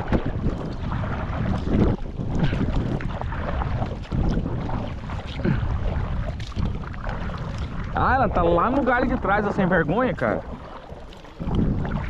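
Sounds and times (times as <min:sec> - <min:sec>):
paddle splashing in water: 0:00.0 - 0:12.0
wind buffeting microphone: 0:00.0 - 0:12.0.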